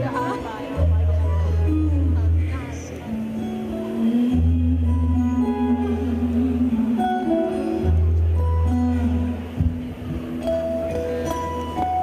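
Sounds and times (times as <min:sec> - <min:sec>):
acoustic guitar through pa: 0:00.0 - 0:12.0.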